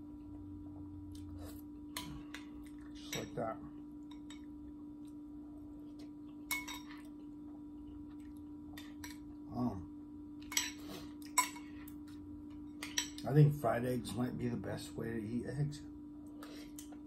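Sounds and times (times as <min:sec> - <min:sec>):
steady low room hum: 0:00.0 - 0:17.0.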